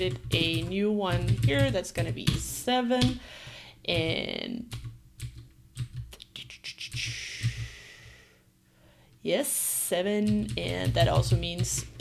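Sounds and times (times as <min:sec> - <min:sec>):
computer keyboard typing: 0:00.0 - 0:03.2, 0:03.9 - 0:06.1, 0:06.9 - 0:07.8, 0:10.2 - 0:12.0.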